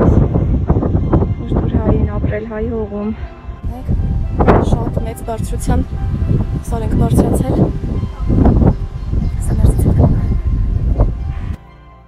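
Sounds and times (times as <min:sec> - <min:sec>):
wind buffeting microphone: 0:00.0 - 0:11.6
faint music: 0:00.0 - 0:12.0.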